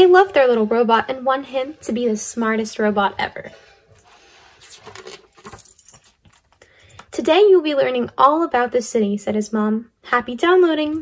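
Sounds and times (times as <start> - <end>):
paper page rustling: 4.0 - 5.6.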